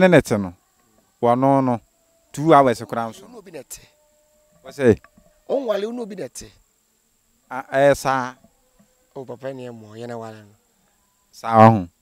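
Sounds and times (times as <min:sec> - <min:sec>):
man speaking: 0:00.0 - 0:00.6, 0:01.2 - 0:01.8, 0:02.4 - 0:03.9, 0:04.6 - 0:06.6, 0:07.5 - 0:08.4, 0:09.2 - 0:10.6, 0:11.4 - 0:12.0
crickets trilling: 0:00.0 - 0:12.0.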